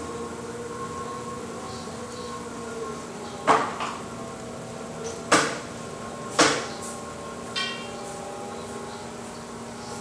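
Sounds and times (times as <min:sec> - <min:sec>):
potter's wheel humming: 0:00.0 - 0:10.0.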